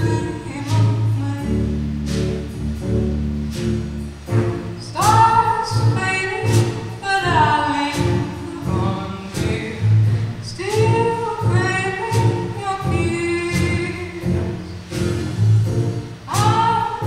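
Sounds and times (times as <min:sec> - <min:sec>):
drums: 0:00.0 - 0:17.0
upright bass: 0:00.0 - 0:17.0.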